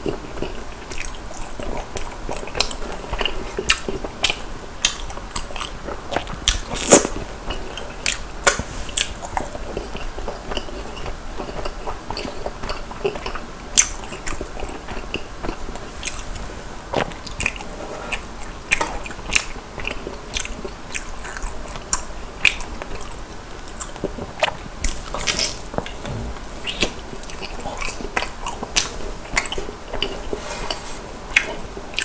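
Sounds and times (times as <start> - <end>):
person chewing crunchy snack: 0.0 - 30.3.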